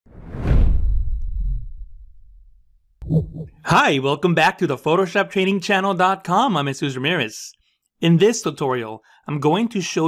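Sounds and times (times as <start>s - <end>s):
whoosh: 0.1s - 2.8s
deep low rumble: 0.1s - 3.5s.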